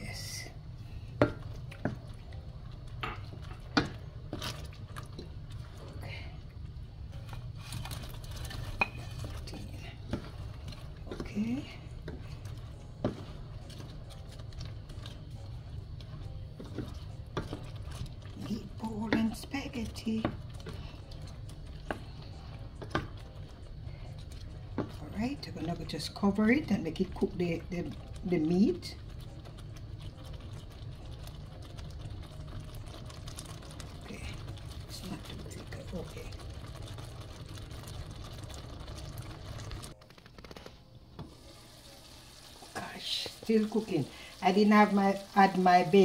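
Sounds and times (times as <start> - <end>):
steady low hum: 0.0 - 41.2
spatula stirring sauce in pan: 0.9 - 6.4, 7.1 - 40.2.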